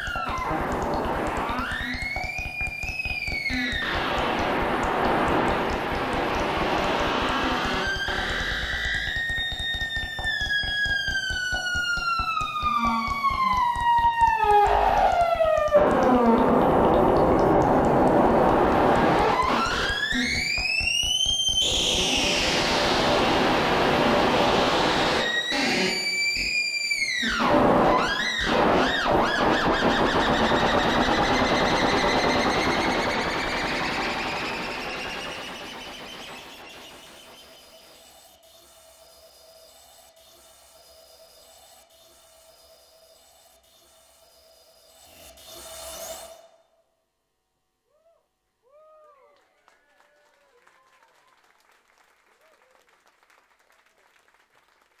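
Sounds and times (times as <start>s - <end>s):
synthesized gliding tones: 0.0s - 42.6s.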